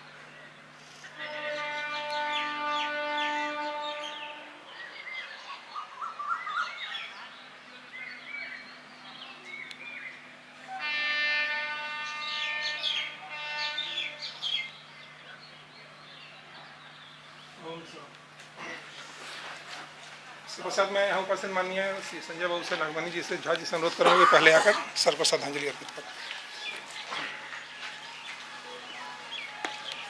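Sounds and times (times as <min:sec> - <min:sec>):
birds chirping and twittering: 0:00.0 - 0:30.0
long steady horn tone: 0:00.4 - 0:05.1, 0:10.3 - 0:15.4, 0:25.2 - 0:30.0.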